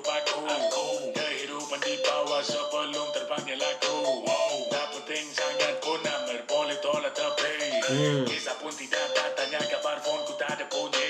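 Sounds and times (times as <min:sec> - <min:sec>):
man rapping over a beat: 0:00.0 - 0:11.0.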